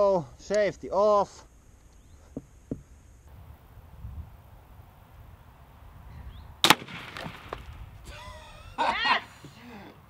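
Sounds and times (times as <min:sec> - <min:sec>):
faint low wind rumble: 0:00.0 - 0:10.0
crossbow shot: 0:06.6 - 0:07.8.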